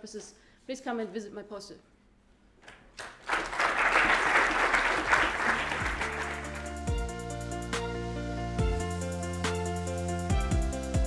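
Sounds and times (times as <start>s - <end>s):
audience applause: 3.0s - 6.9s
soft electronic music: 5.3s - 11.0s.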